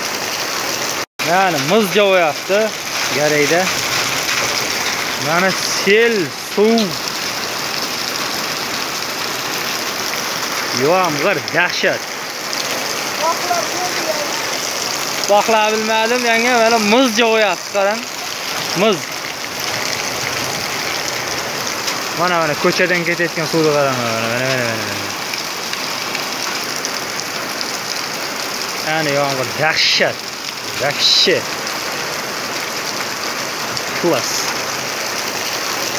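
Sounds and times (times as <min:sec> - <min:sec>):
heavy rain pouring: 0:00.0 - 0:35.9
man's voice: 0:01.2 - 0:03.8, 0:05.2 - 0:07.1, 0:10.7 - 0:12.1, 0:13.1 - 0:19.1, 0:22.1 - 0:25.2, 0:28.8 - 0:31.5, 0:34.0 - 0:34.6.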